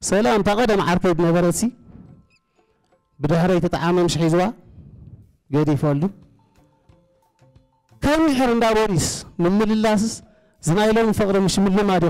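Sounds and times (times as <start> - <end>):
man speaking through microphone: 0.0 - 1.8, 3.2 - 4.7, 5.5 - 6.2, 8.0 - 12.0.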